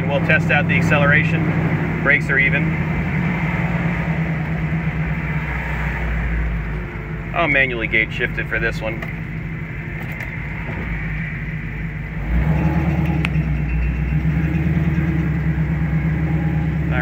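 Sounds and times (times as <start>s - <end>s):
car engine running: 0.0s - 17.0s.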